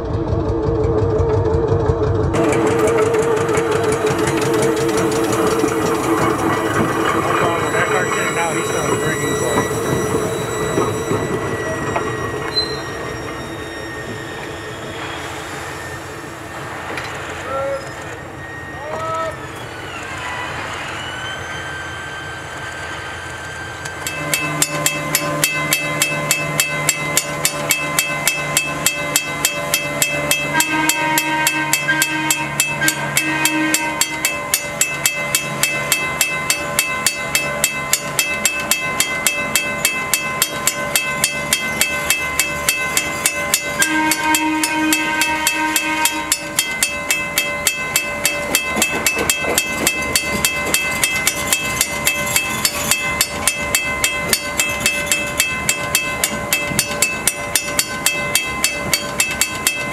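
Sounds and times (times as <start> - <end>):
crossing warning bell ringing: 0.0 - 59.9
held tone: 0.0 - 59.9.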